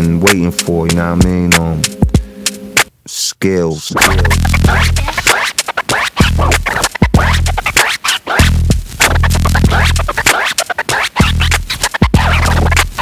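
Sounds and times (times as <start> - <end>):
electronic hip-hop beat: 0.0 - 2.9, 3.7 - 13.0
turntable scratching: 3.6 - 13.0
heavy bass note: 4.0 - 5.3.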